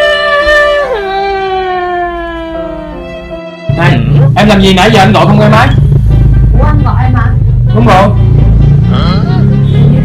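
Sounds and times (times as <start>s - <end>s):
deep steady rumble: 3.8s - 10.0s.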